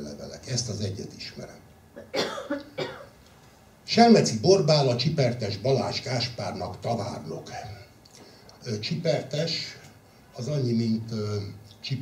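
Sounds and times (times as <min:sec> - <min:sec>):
person coughing: 0:02.0 - 0:03.2.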